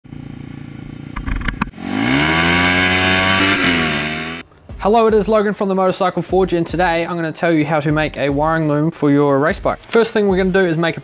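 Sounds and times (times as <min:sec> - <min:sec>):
motorcycle engine idling and revving: 0:00.0 - 0:04.8
sharp clicks: 0:01.2 - 0:01.7.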